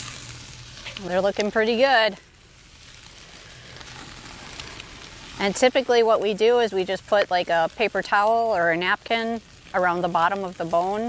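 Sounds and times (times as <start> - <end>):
meat sizzling on a grill: 0.0 - 11.0.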